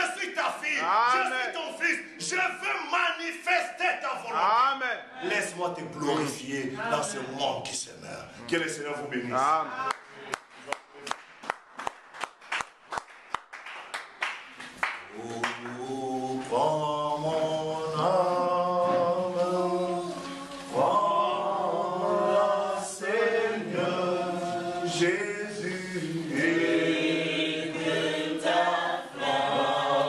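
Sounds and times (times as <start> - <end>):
rhythmic hand clapping: 9.9 - 16.6
congregation singing: 14.8 - 30.0.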